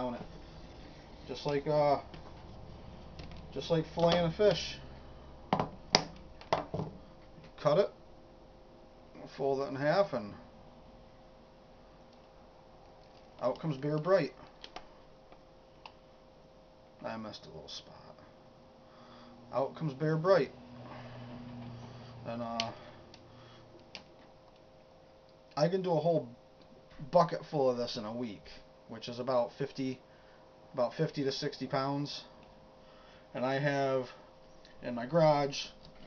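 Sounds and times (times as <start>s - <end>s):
faint steady hum: 0.0s - 36.0s.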